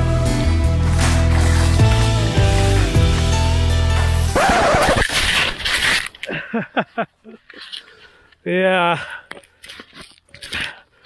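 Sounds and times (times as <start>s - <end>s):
rustling: 4.8s - 8.3s
man laughing breathily: 6.2s - 7.6s.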